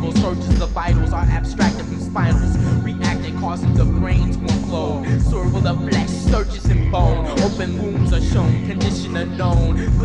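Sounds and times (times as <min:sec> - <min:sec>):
heavy bass line: 0:00.0 - 0:10.0
rapping over a beat: 0:00.0 - 0:10.0
drum hits: 0:00.1 - 0:10.0.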